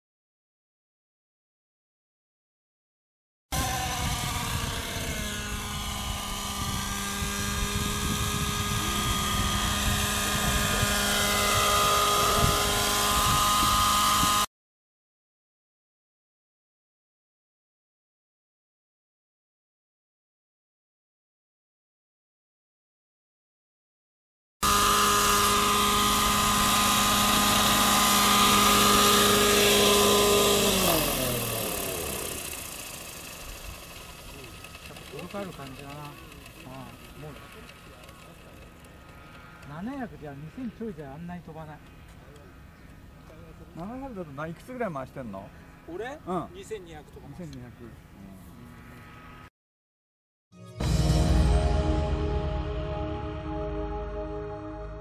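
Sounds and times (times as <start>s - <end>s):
model helicopter engine and rotors whining: 3.5s - 14.5s, 24.6s - 49.5s.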